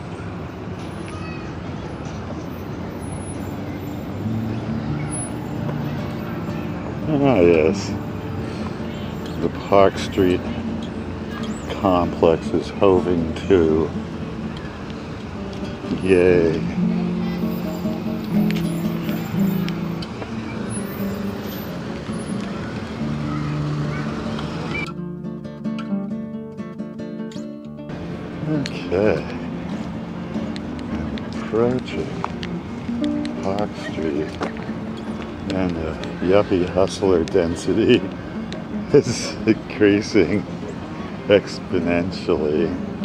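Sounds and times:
faint voices: 0.0 - 24.7, 28.0 - 43.0
traffic hum: 0.0 - 43.0
held low musical notes: 4.1 - 23.3.

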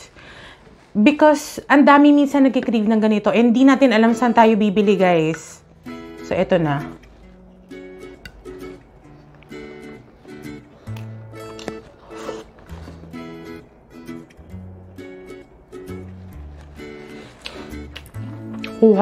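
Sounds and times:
plucked-string chords: 4.0 - 16.8.

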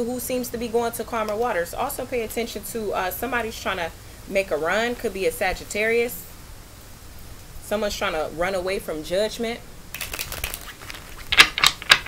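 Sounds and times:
cards riffle-shuffled: 9.9 - 12.0
sharp clicks of cards: 10.0 - 12.0.

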